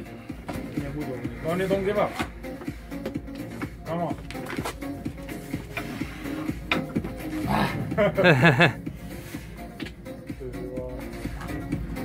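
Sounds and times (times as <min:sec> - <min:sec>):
music: 0:00.0 - 0:12.0
man groaning with effort: 0:07.4 - 0:08.3.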